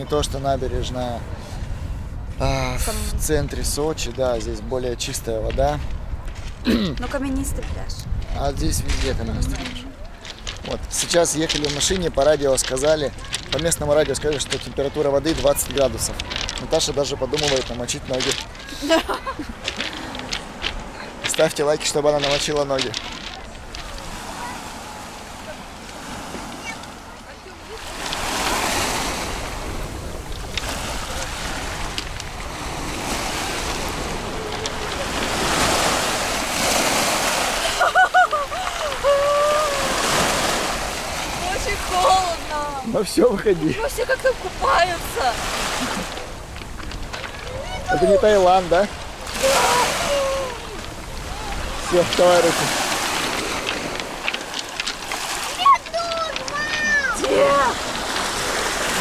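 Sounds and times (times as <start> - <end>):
waves washing up pebble beach: 0.0 - 59.0
sharp clicks of stones: 15.3 - 18.7, 19.5 - 24.2, 27.8 - 37.1, 49.2 - 57.4.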